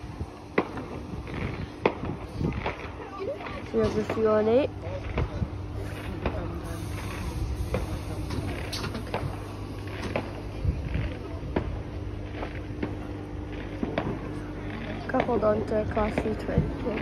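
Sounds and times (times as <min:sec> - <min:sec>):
electric train humming: 0:03.7 - 0:17.0.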